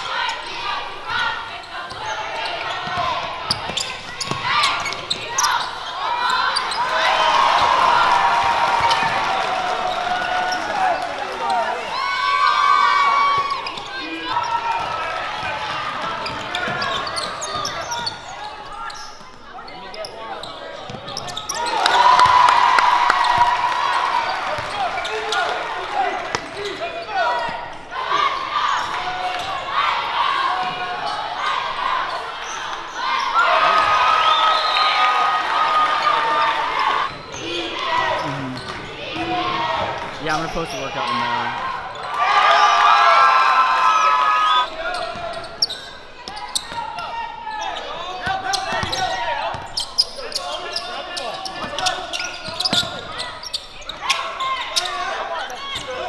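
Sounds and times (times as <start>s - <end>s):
basketball bouncing on court: 1.9s - 5.5s, 48.2s - 49.8s.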